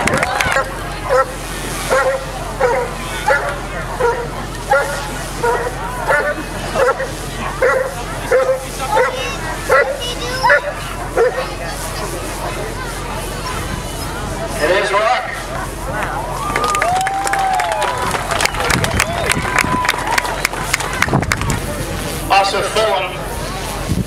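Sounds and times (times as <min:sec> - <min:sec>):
dog barking: 0:01.9 - 0:11.5.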